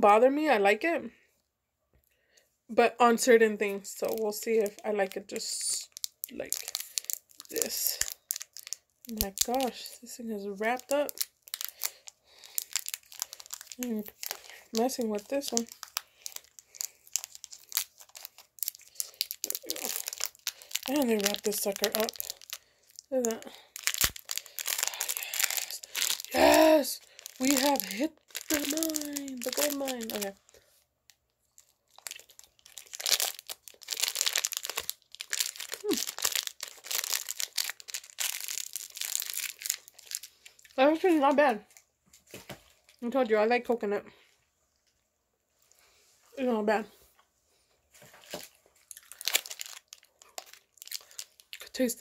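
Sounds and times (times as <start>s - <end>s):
candy wrapper crinkling: 3.6s - 43.1s, 48.0s - 52.0s.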